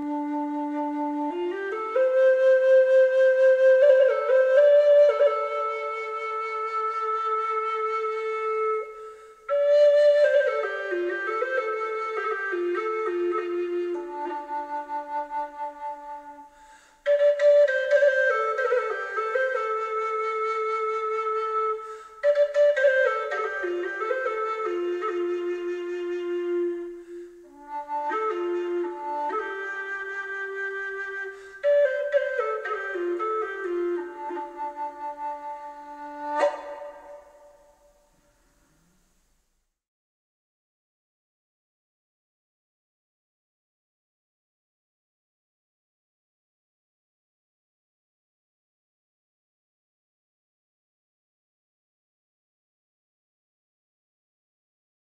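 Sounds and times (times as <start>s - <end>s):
low wooden flute melody: 0.0s - 39.0s.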